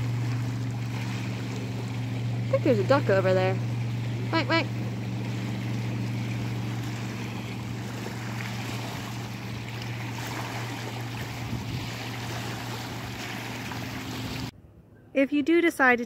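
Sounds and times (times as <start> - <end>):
motorboat engine drone: 0.0 - 14.5
waves lapping on rocky shore: 0.0 - 14.5.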